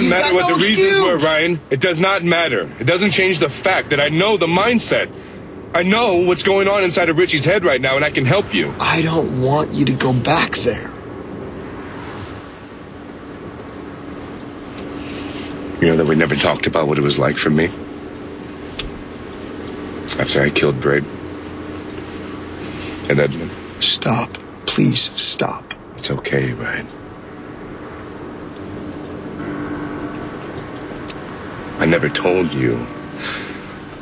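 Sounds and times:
car road and engine noise: 0.0 - 34.0
faint steady hum: 0.0 - 34.0.

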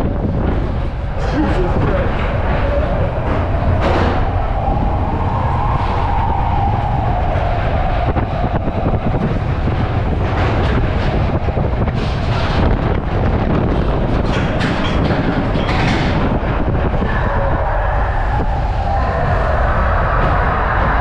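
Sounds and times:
roller coaster wheels rumbling: 0.0 - 21.0.

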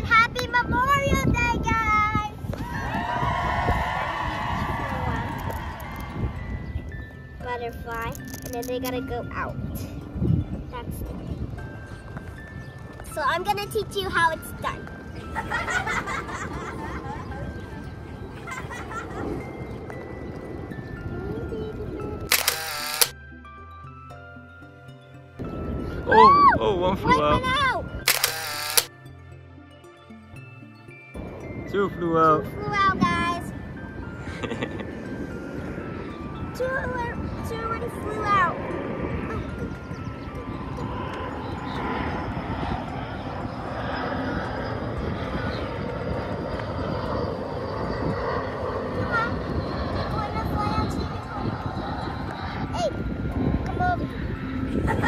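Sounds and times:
outdoor ambience: 0.0 - 26.6, 27.4 - 31.8, 32.6 - 55.0
low rumbling drone: 2.3 - 12.5, 15.1 - 55.0
light background music: 3.8 - 50.1
camera shutter sound effect: 22.3 - 23.1, 28.1 - 28.9.

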